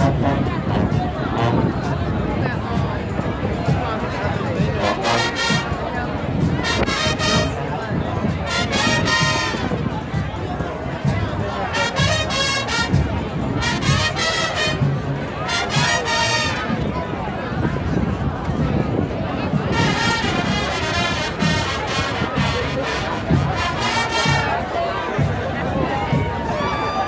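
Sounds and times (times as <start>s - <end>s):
crowd chatter: 0.0s - 27.0s
marching band brass and drums: 0.0s - 27.0s.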